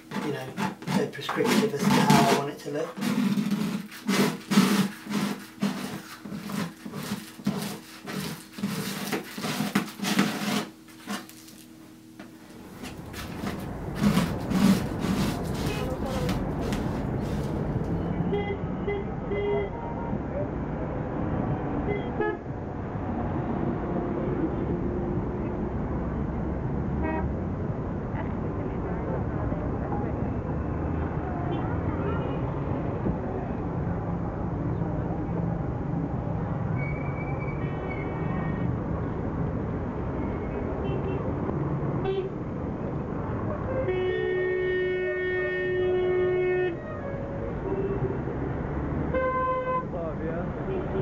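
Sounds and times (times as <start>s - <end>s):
traffic din: 0.0s - 9.8s, 10.5s - 51.0s
car horns tooting: 49.1s - 49.9s.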